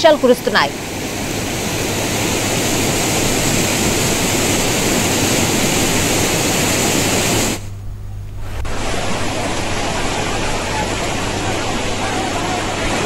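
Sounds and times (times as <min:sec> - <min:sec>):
floodwater rushing: 0:00.0 - 0:07.6, 0:08.4 - 0:13.0.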